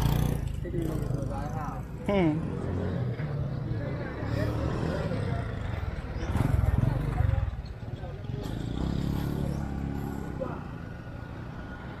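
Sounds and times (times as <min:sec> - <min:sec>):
motorcycle engine passing: 0:00.0 - 0:01.8, 0:02.4 - 0:12.0.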